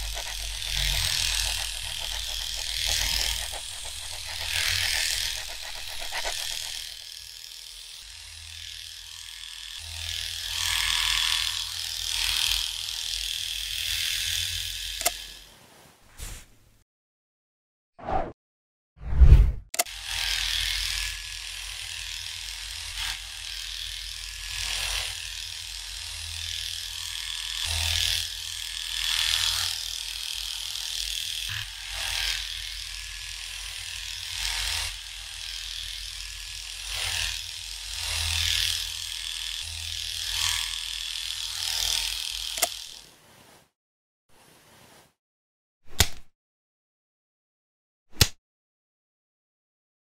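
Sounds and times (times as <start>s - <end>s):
electric hair clipper buzzing: 0.0s - 15.4s, 19.8s - 43.1s.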